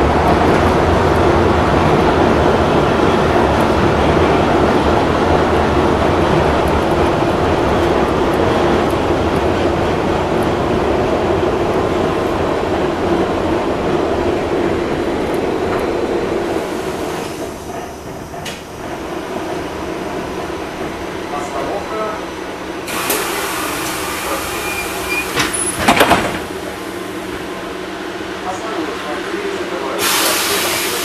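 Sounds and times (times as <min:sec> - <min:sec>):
tram doors clattering: 0:00.0 - 0:31.0
tram running on rails: 0:00.0 - 0:31.0
hiss: 0:22.9 - 0:25.4, 0:30.0 - 0:31.0.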